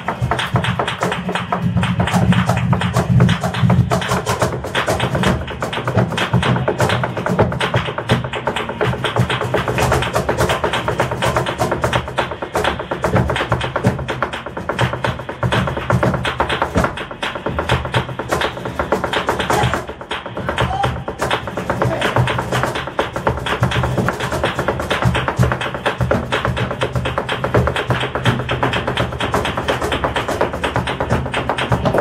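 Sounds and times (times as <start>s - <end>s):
live flamenco music: 0.0s - 32.0s.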